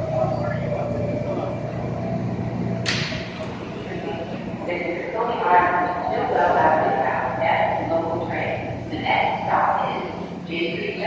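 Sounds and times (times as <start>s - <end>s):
train low hum: 0.0s - 11.0s.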